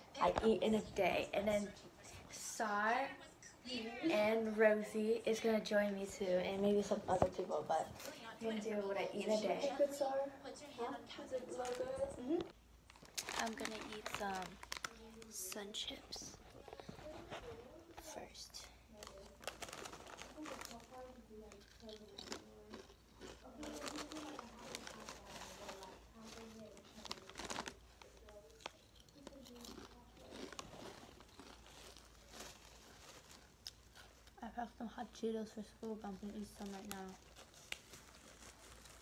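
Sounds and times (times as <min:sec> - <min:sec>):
chip bag crinkling: 0:11.2 - 0:17.1, 0:17.7 - 0:34.4, 0:35.6 - 0:39.0.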